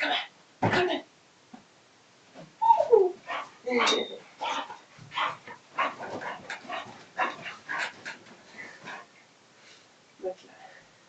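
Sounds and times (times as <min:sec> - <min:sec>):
dog barking and yipping: 0:02.7 - 0:08.0.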